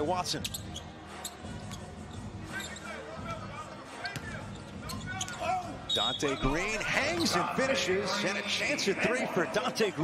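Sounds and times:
players' voices: 0:02.4 - 0:10.0.

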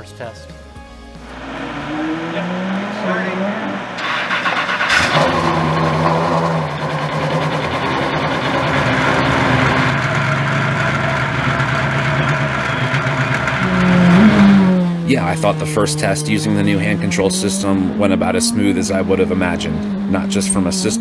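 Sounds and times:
race car engine idling: 0:01.2 - 0:21.0.

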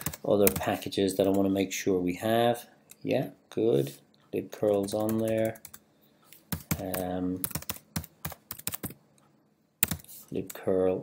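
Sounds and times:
computer keyboard typing: 0:00.0 - 0:01.6, 0:04.6 - 0:05.8, 0:06.5 - 0:09.0, 0:09.8 - 0:10.6.

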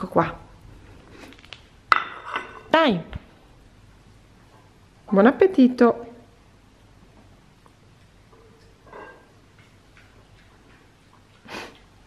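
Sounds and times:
dogs eating off plates: 0:07.9 - 0:12.0.

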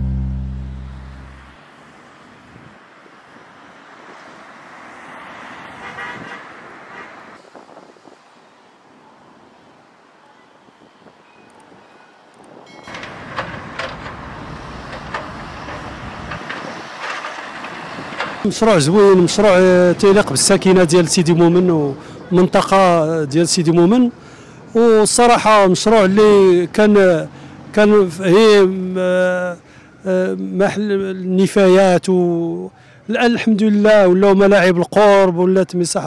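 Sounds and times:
music jingle: 0:00.0 - 0:01.5
street traffic: 0:00.0 - 0:36.0
small clicks and knocks: 0:12.4 - 0:14.2.

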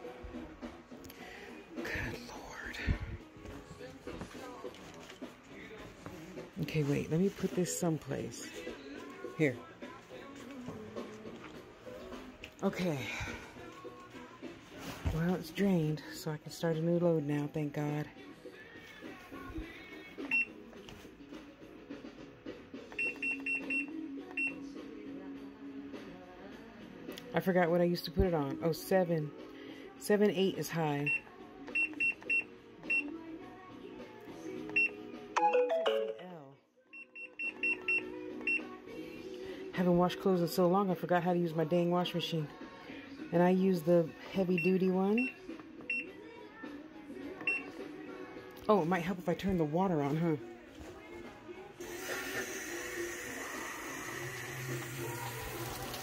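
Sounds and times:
faint background music: 0:00.0 - 0:56.0
washing machine button beeps: 0:20.3 - 0:20.6, 0:22.9 - 0:24.6, 0:31.0 - 0:33.1, 0:34.7 - 0:35.6, 0:37.0 - 0:38.6, 0:47.4 - 0:47.7
washing machine short high beeps: 0:23.0 - 0:24.6.

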